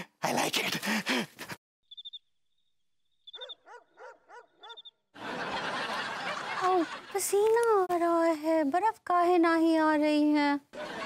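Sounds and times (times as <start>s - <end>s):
crickets chirping: 1.9s - 3.6s
faint dog barking: 3.4s - 4.9s.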